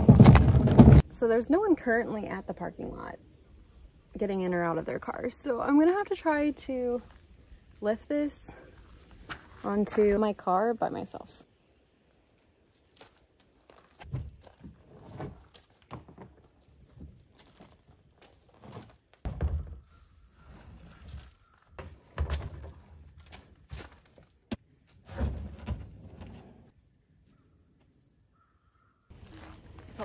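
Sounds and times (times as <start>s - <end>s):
kayak hull thumps and scrapes: 0.0s - 1.0s, 18.5s - 24.0s, 25.0s - 26.7s
high insect buzz: 26.2s - 30.0s
footsteps on gravel: 29.1s - 30.0s.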